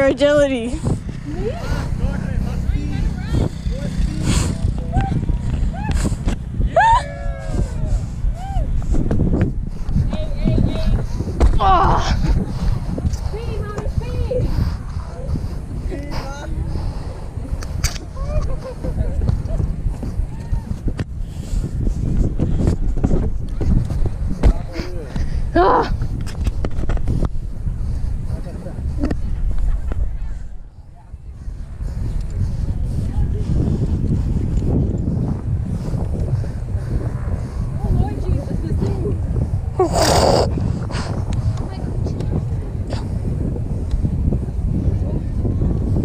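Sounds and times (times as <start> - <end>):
people talking and calling: 0.0 - 26.3, 27.5 - 43.4
wind buffeting microphone: 0.0 - 46.0
camera handling rumble: 17.5 - 21.2, 26.0 - 27.5.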